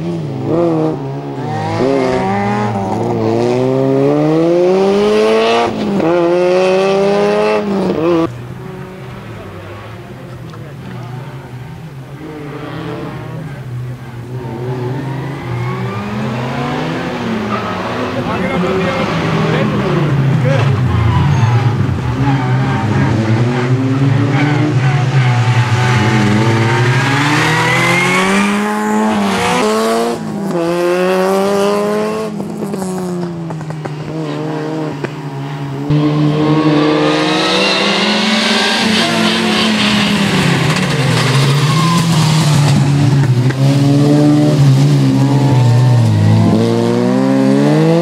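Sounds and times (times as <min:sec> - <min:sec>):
car engines revving hard: 0:00.0 - 0:48.0.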